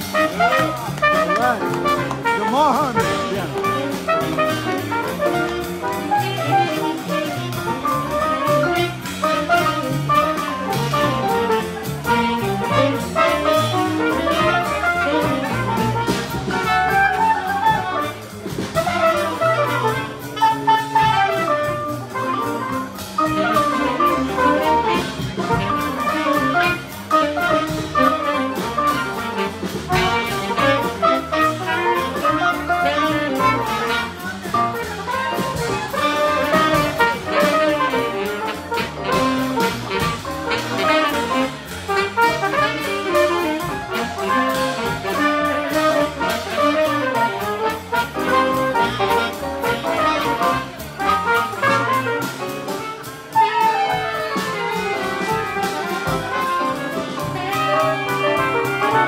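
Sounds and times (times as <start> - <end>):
drums: 0.0 - 59.0
piano: 0.0 - 59.0
trumpet: 0.0 - 59.0
upright bass walking: 0.0 - 59.0.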